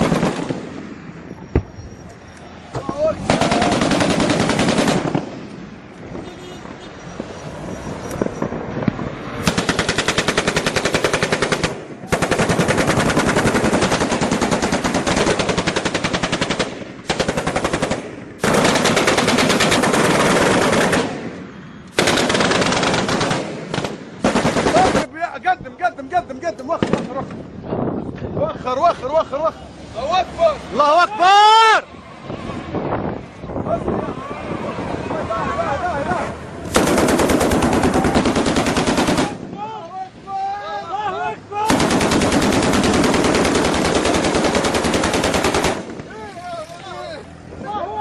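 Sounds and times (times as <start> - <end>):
heavy machine gun bursts: 3.3 - 5.3, 9.4 - 21.2, 22.0 - 25.1, 36.7 - 39.4, 41.7 - 46.0.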